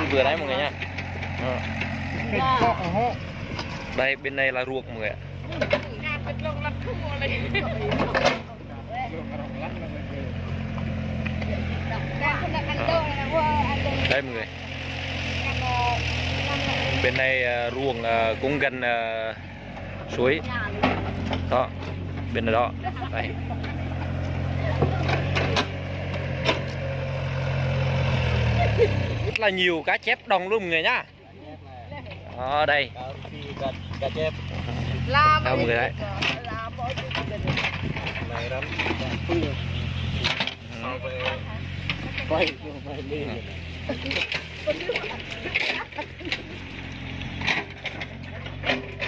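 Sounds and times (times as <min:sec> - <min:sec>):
diesel engine running: 0:00.0 - 0:49.0.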